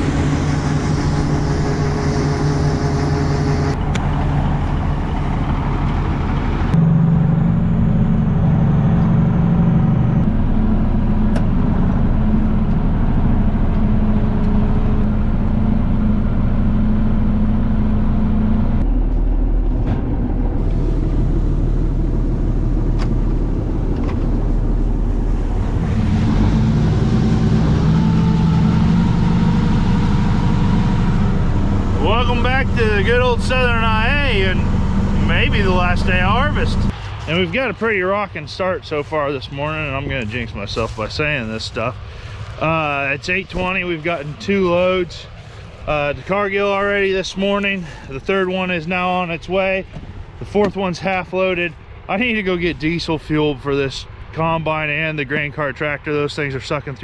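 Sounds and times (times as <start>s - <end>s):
combine harvester engine: 0.0s - 56.7s
tractor engine from inside cab: 0.0s - 56.8s.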